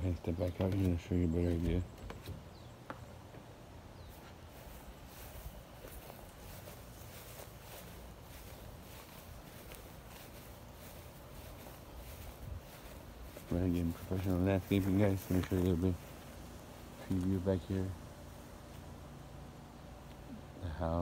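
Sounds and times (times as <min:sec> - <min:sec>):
faint footsteps in a yard: 0:00.0 - 0:21.0.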